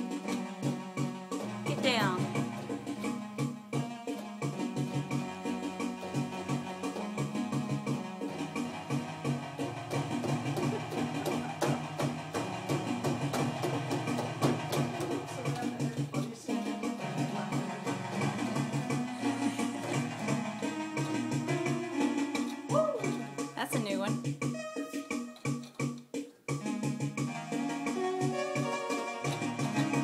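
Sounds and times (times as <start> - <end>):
percussive beat: 0.0 - 30.0
repeating bass pattern: 1.4 - 3.6.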